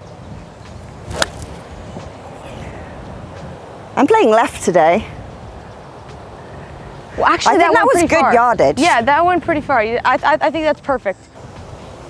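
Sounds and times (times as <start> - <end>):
wind noise on microphone: 0.0 - 5.7
golf club striking ball: 1.0 - 1.6.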